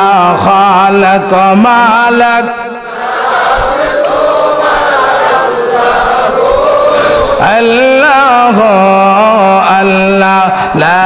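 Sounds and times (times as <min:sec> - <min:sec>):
male voices chanting in unison: 0:00.0 - 0:11.0.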